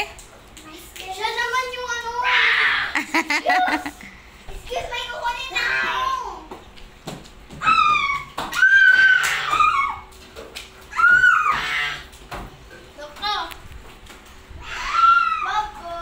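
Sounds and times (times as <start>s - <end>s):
children squealing and shrieking: 2.2s - 4.0s, 7.5s - 10.2s, 10.9s - 12.1s, 14.6s - 16.0s.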